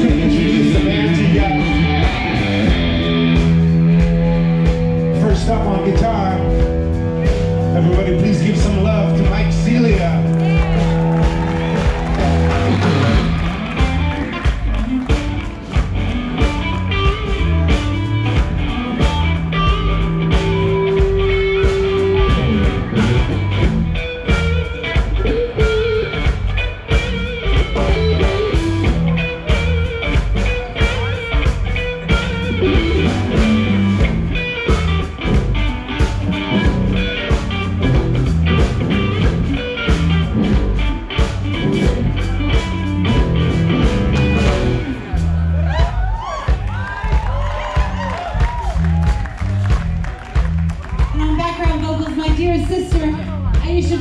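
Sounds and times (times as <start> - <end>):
live rock band playing: 0.0 - 54.0.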